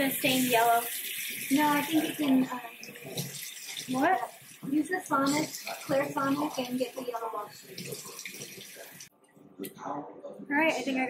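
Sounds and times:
water running from tap: 0.0 - 9.1.

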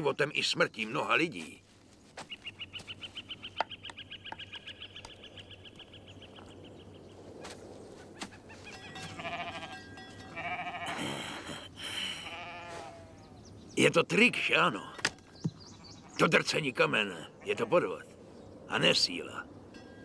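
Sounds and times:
goats and sheep bleating: 8.6 - 13.3.

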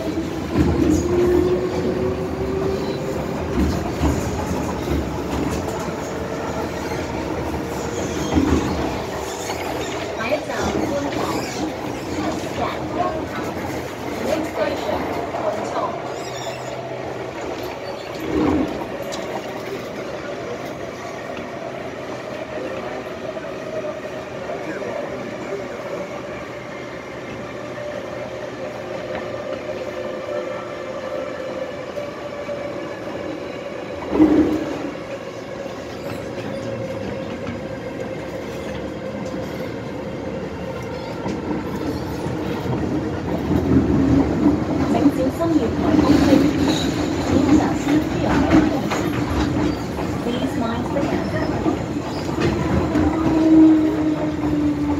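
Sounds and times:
train interior drone: 0.0 - 54.9.

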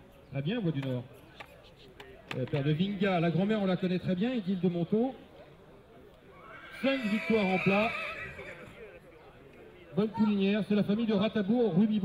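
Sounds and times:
horse whinnying: 6.3 - 8.9.

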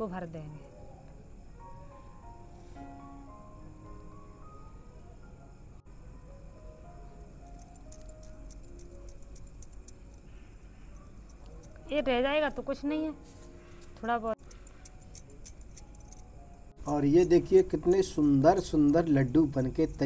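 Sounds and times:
quiet background music: 0.0 - 20.0
glass bangles clinking: 6.7 - 12.6, 13.5 - 20.0.

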